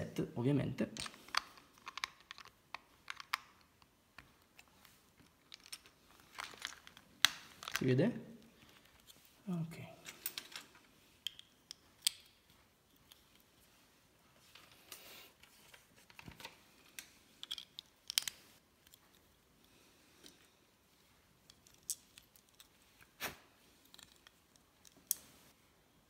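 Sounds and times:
loose plastic pieces rattling: 0:01.0 - 0:03.7, 0:05.3 - 0:07.8
plastic bricks clicking: 0:01.0 - 0:03.9.

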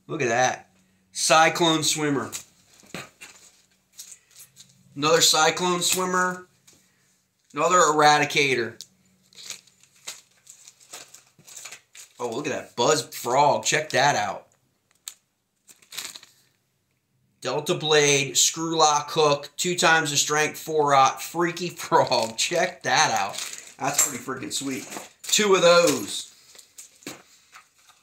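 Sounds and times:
plastic packaging clicks and rustles: 0:02.3 - 0:04.8, 0:08.8 - 0:12.4, 0:14.5 - 0:16.6, 0:21.8 - 0:28.0
plastic bag crinkling: 0:09.2 - 0:12.4, 0:14.9 - 0:16.6, 0:21.8 - 0:28.0.

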